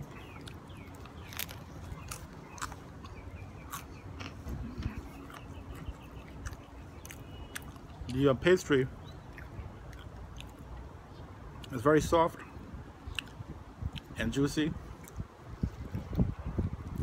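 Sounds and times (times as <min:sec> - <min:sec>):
person chewing food: 0:00.0 - 0:08.2, 0:09.2 - 0:10.9, 0:13.1 - 0:14.1
wind rumble on microphone: 0:04.0 - 0:07.1, 0:11.9 - 0:17.0
wet mouth clicks and smacks: 0:13.1 - 0:14.1.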